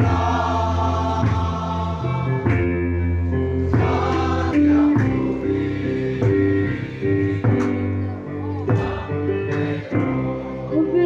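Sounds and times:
people singing: 0.0 - 11.0.

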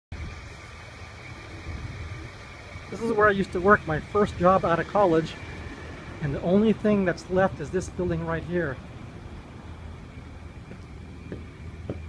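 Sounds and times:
car engine idling: 0.1 - 12.0
street background hiss: 0.1 - 12.0.

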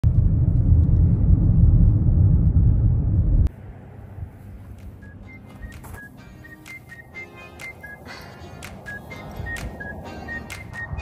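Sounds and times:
car driving along a road: 0.1 - 11.0.

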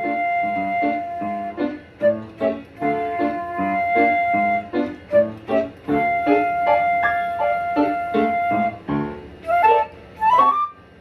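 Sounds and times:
concert flute playing: 0.0 - 11.0
piano chords: 0.0 - 11.0.

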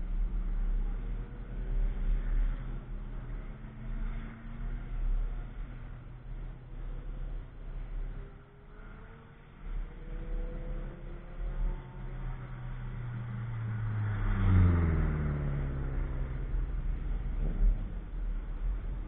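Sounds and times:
car engine accelerating past: 8.7 - 19.0.

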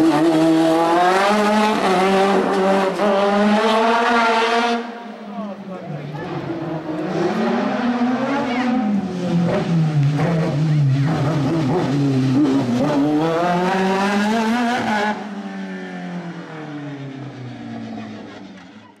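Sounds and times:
race car engine revving: 0.0 - 18.9.

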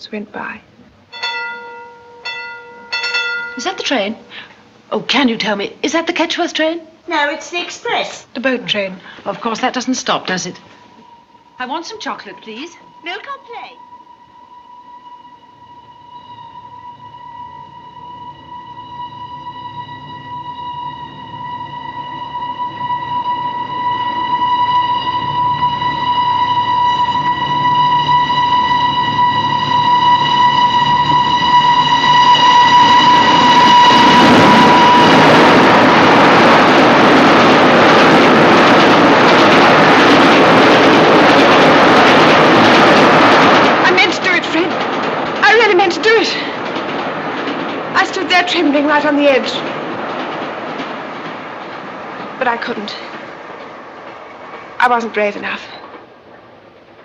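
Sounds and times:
train rushing past: 0.4 - 57.0
steam train whistle: 10.3 - 44.5.

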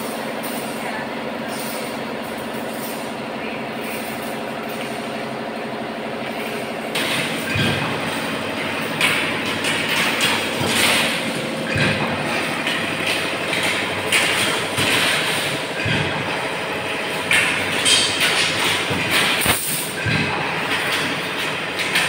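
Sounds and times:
machinery humming: 0.0 - 22.0.

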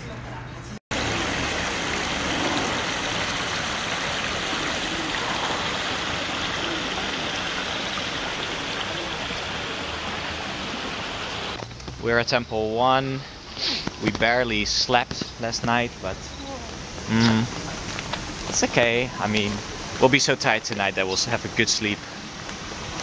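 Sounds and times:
fountain jets splashing into pond: 0.9 - 11.6, 13.6 - 23.0.

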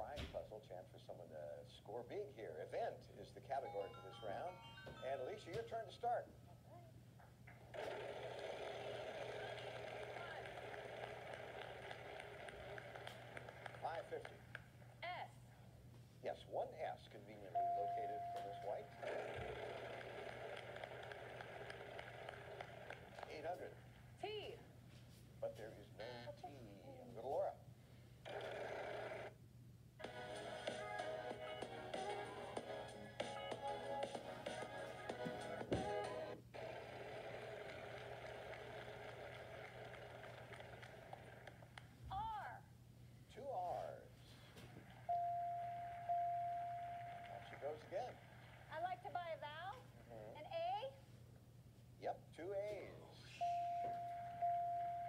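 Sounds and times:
music from phone speaker: 3.7 - 5.6, 30.0 - 36.4
voice from phone speaker: 25.5 - 27.5.

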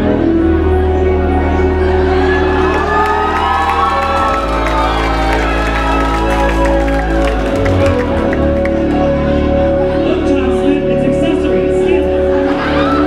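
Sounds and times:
crowd cheering: 1.4 - 9.4, 12.4 - 13.0.

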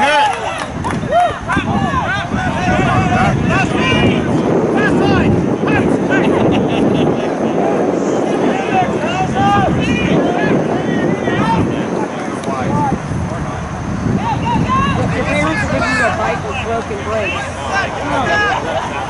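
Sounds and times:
voices shouting calls: 0.0 - 19.0
wind on microphone: 0.0 - 19.0.

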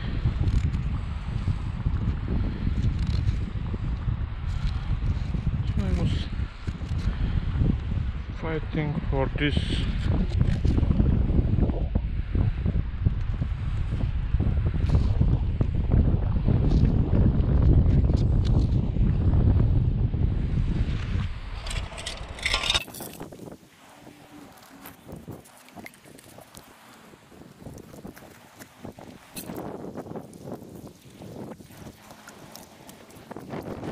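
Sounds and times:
wind buffeting microphone: 0.0 - 33.9
faint clicks and rustles: 21.5 - 33.9.

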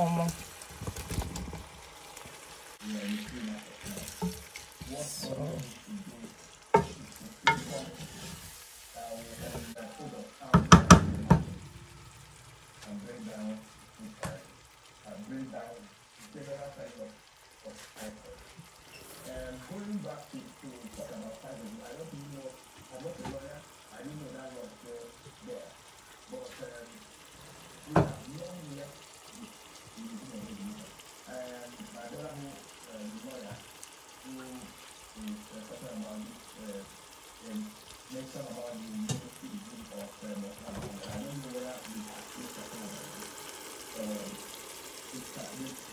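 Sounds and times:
wooden spoon stirring pot: 0.0 - 9.9
food sizzling in oil: 0.0 - 45.9.

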